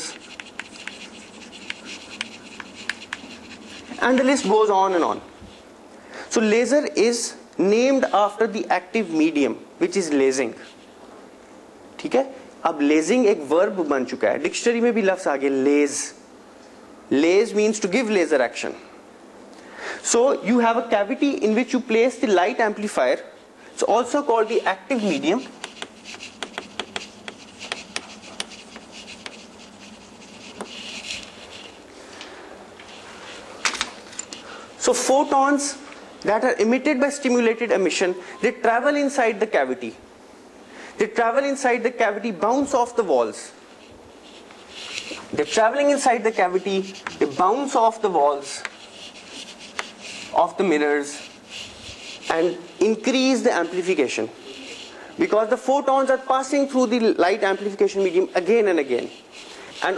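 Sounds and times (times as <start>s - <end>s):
chalk tapping on board: 0.0s - 4.5s, 24.9s - 31.7s, 48.6s - 50.4s
chalk writing on blackboard: 0.0s - 5.7s, 10.3s - 11.0s, 24.0s - 31.8s, 32.8s - 35.4s, 43.7s - 59.9s.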